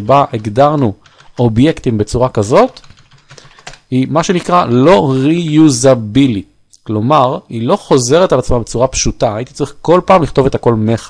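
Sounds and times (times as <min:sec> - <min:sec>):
man speaking: 0:00.0 - 0:02.8, 0:03.9 - 0:11.0.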